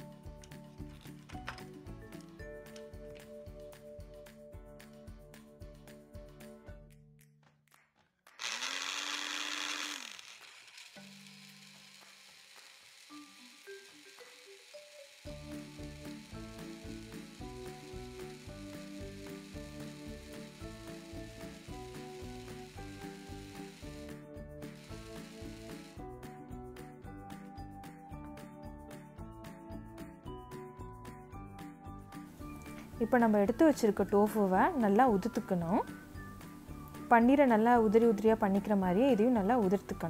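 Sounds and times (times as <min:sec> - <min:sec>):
background music with beat: 0:01.7 - 0:07.4
blender motor: 0:08.3 - 0:26.3.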